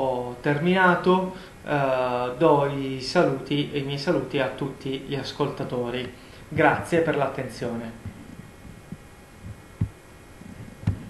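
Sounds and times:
faint steady hum: 0.0s - 11.0s
dull low thumps: 8.0s - 11.0s.

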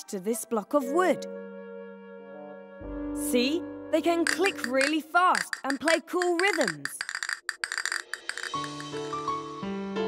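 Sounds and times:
castanets clicking fast: 4.2s - 9.0s.

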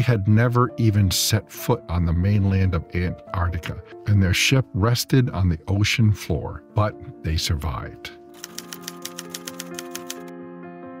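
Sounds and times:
soft background music: 0.0s - 11.0s
typewriter key clicks: 8.4s - 10.3s.

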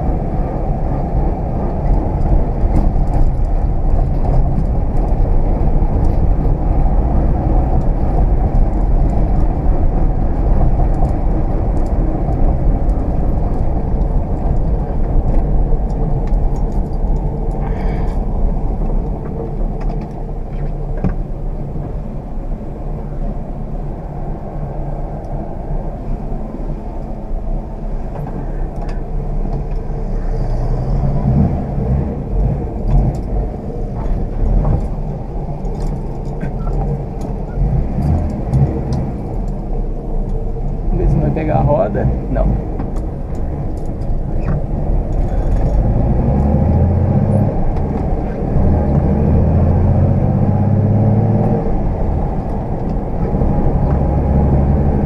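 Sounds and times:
car engine rumble from cabin: 0.0s - 55.0s
tyre and road noise: 0.0s - 55.0s.

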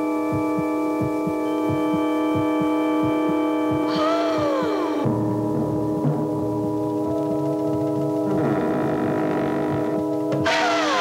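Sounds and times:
low heartbeat-like pulse: 0.0s - 10.5s
eerie electronic drone: 0.0s - 11.0s.

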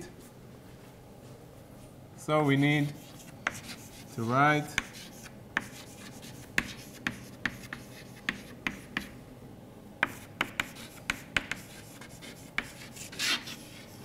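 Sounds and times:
chalk tapping and scraping: 2.5s - 9.2s, 10.0s - 14.0s.

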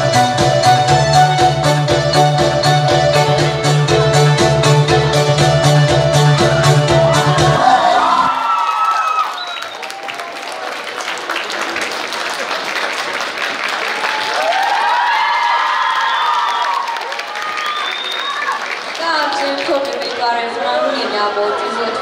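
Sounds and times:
cheering voices: 6.3s - 22.0s
audience applauding: 7.3s - 22.0s.

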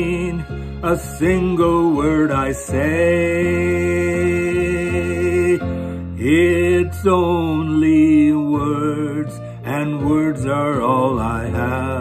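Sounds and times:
man singing slow melody: 0.0s - 12.0s.

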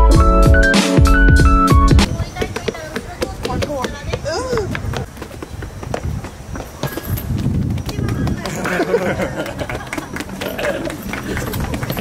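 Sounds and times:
people talking: 2.0s - 4.8s, 7.7s - 12.0s
people laughing: 8.4s - 11.9s.

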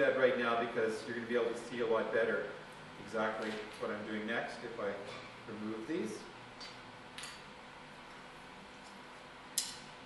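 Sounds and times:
sharp click: 9.6s - 9.9s.

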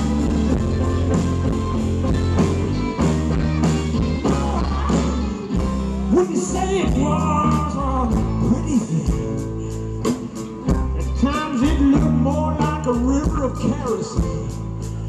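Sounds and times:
electric bass: 0.0s - 15.0s
steady drum beat: 0.0s - 15.0s
man singing: 3.9s - 9.8s, 10.7s - 15.0s.

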